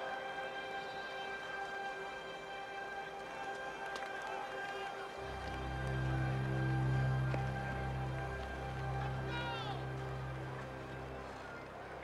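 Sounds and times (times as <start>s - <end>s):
quiet orchestral chord: 4.4s - 12.0s.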